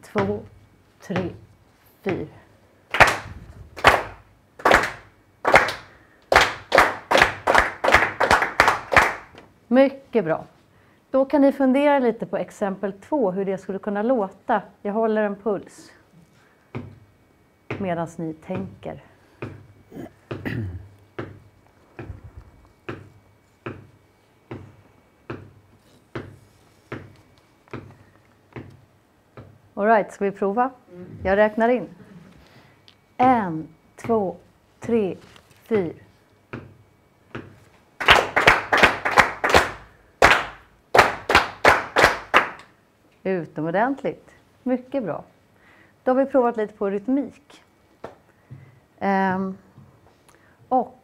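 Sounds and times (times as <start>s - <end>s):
people clapping in unison: 2.9s - 9.4s, 38.0s - 42.7s.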